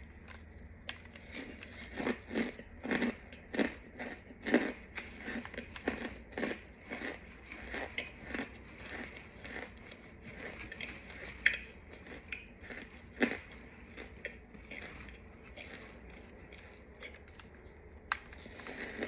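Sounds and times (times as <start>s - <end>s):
starch clumps crunching: 4.4s - 19.0s.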